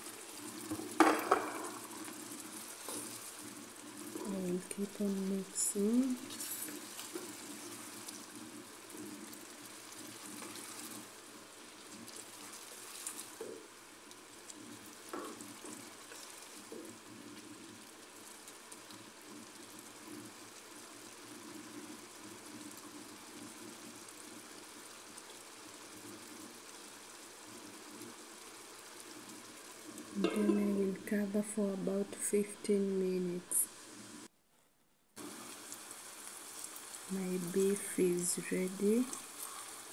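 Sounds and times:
stew sizzling in a frying pan: 0.0s - 34.3s, 35.2s - 39.9s
wooden spoon knocking on pan: 0.7s - 1.9s, 15.1s - 15.8s, 30.2s - 30.8s.

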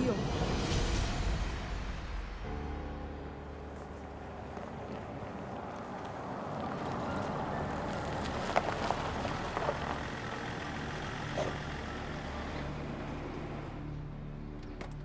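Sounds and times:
car engine running: 3.7s - 15.0s
tyres rolling over paving stones: 4.0s - 13.8s.

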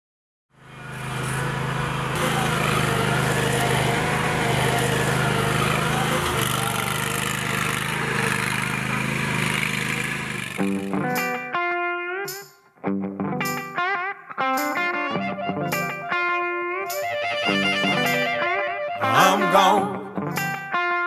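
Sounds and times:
lawn mower engine running: 0.5s - 11.2s.

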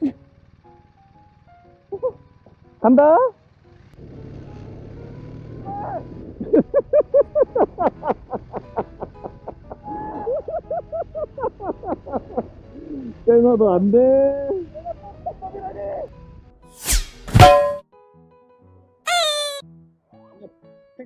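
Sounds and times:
motorcycle pulling away: 0.0s - 16.1s
high-pitched laughter: 19.1s - 19.6s.

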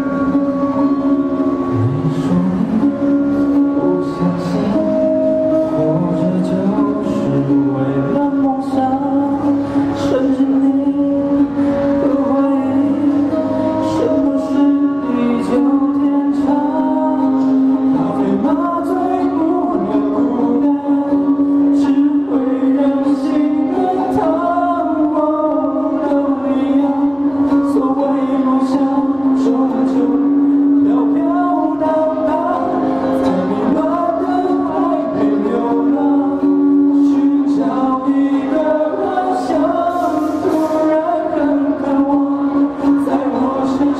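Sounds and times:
man singing into a microphone: 0.0s - 43.9s
strummed acoustic guitar: 0.0s - 43.9s.

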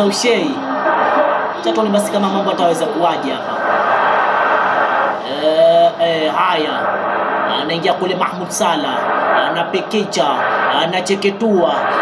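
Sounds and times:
dense rushing noise: 0.0s - 12.0s.

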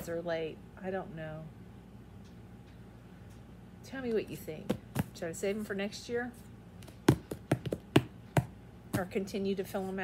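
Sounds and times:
hands tapping on tabletop: 6.8s - 9.1s.

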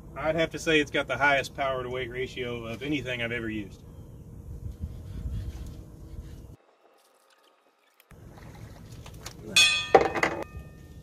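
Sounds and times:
water sloshing and splashing: 6.5s - 10.5s.

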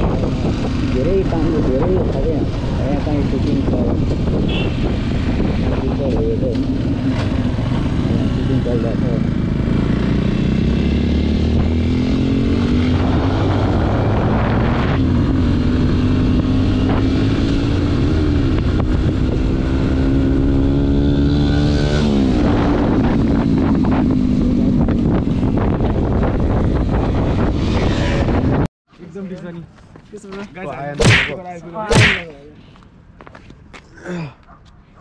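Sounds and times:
motorcycle engine revving: 0.0s - 28.7s
wind rushing over microphone: 0.0s - 28.7s.

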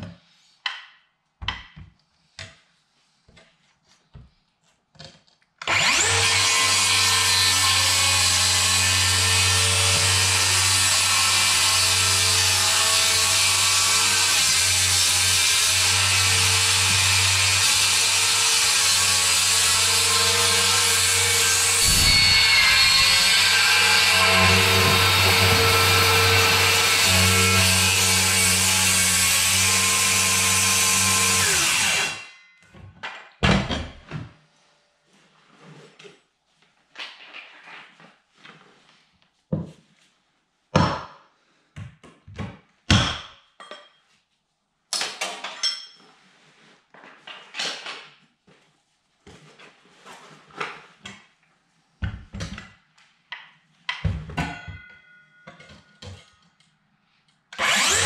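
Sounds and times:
circular saw cutting wood: 5.7s - 32.3s, 57.6s - 58.0s.

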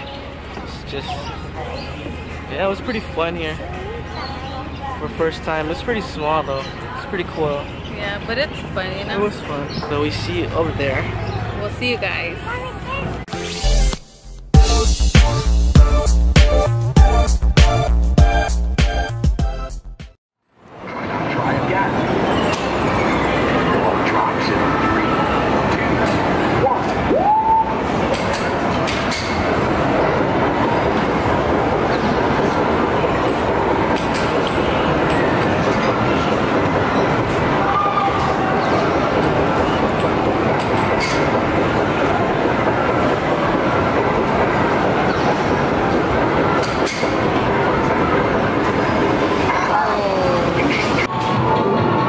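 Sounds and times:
crowd chatter: 0.0s - 13.3s, 20.7s - 52.0s.

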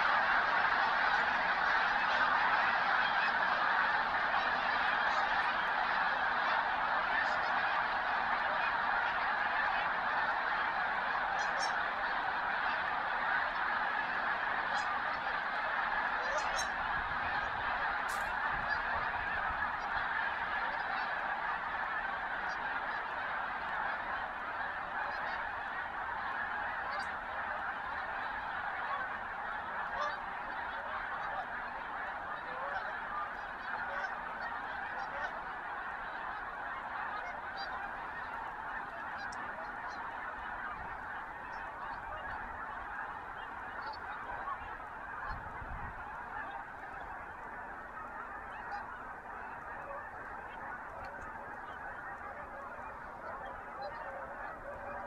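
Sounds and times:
flock of geese honking: 0.0s - 55.0s.

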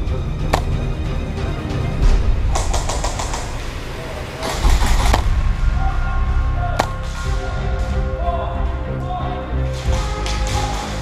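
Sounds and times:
sharp clicks: 2.5s - 3.6s
music with heavy bass: 4.6s - 11.0s.

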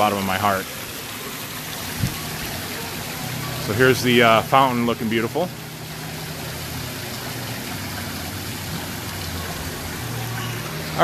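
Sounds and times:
fountain water splashing: 0.0s - 11.0s.

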